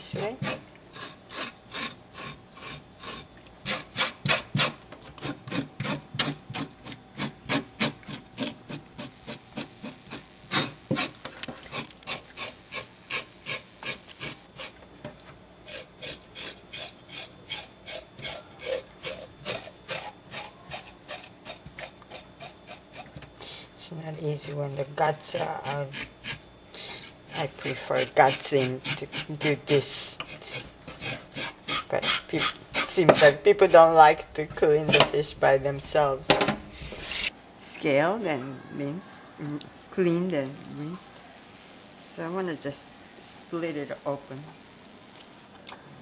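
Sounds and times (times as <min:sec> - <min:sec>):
knife scraping fish scales: 0:00.1 - 0:14.8, 0:15.7 - 0:23.2, 0:25.2 - 0:26.4, 0:27.0 - 0:33.4, 0:36.9 - 0:37.3.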